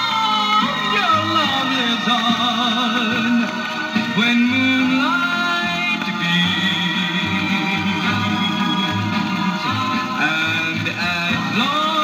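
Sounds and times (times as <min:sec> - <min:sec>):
doo-wop record playing: 0:00.0 - 0:12.0.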